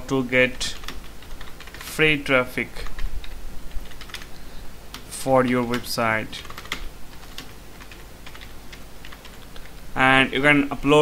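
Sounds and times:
low electrical hum: 0.0 - 11.0
keyboard typing: 0.7 - 2.0, 2.8 - 4.3, 4.9 - 9.8.

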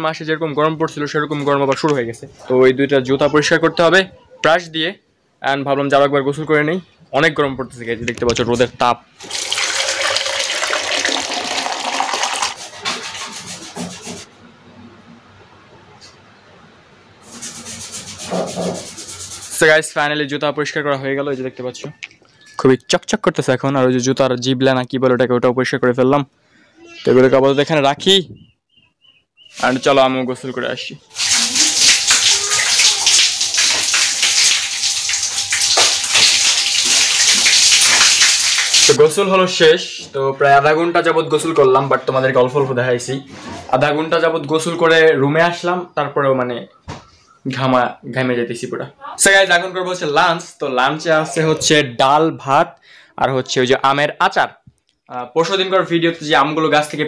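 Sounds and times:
water running: 9.2 - 14.2, 29.6 - 39.0
short scrapes: 17.2 - 19.6.

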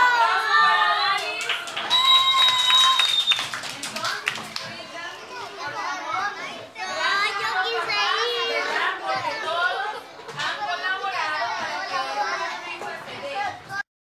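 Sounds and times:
young children talking and calling out: 4.2 - 13.8.

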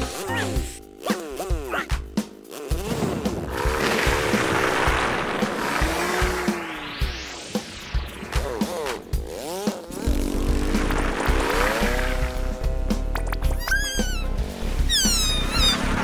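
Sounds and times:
cartoon background music: 0.0 - 16.0
rising glide: 3.0 - 16.0
swooping sound effects: 3.8 - 12.2
falling whistles: 14.8 - 16.0.

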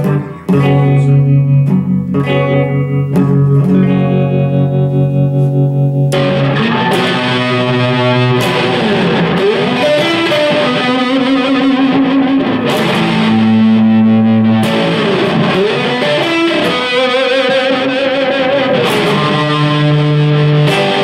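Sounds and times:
distorted electric guitar: 0.0 - 21.0.

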